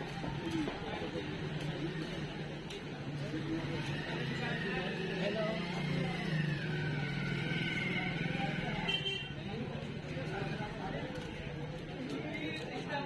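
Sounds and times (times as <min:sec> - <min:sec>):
people's voices: 0:00.0 - 0:13.0.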